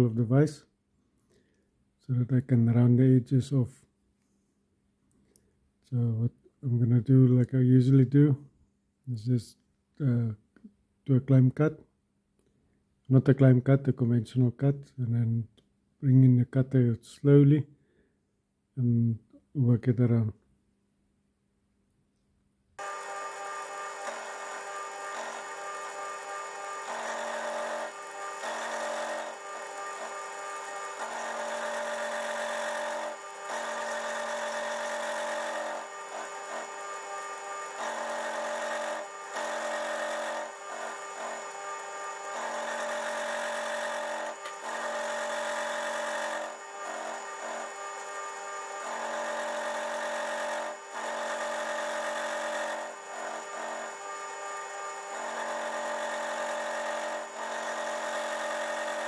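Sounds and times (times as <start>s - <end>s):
end mill cutting metal: 22.8s - 59.0s
spindle whine: 22.8s - 59.0s.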